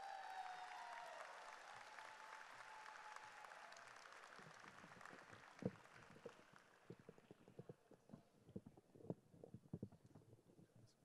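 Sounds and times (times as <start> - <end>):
crowd cheers: 0.0 - 5.8
audience applauding: 0.0 - 7.4.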